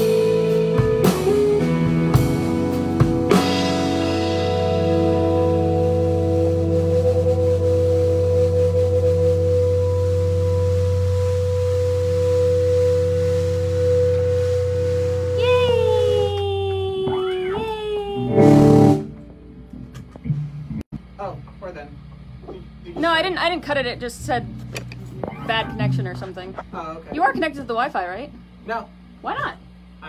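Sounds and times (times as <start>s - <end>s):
drum and cymbal hits: 0.0s - 19.6s
rock band playing: 0.0s - 20.8s.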